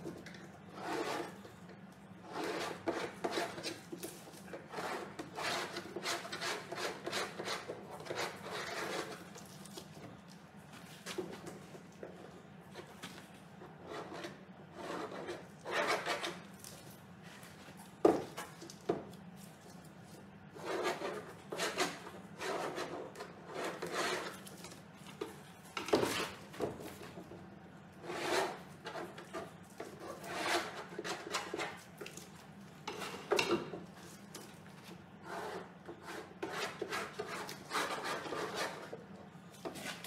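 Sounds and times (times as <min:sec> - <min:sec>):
metal straightedge scraping surface: 0:00.7 - 0:01.4, 0:02.2 - 0:03.8, 0:13.8 - 0:16.4, 0:28.0 - 0:31.8.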